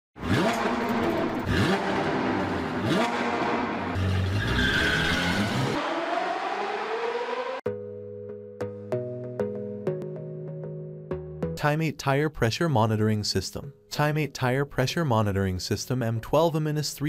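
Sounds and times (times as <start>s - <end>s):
sports car engine revving: 0.2s - 7.6s.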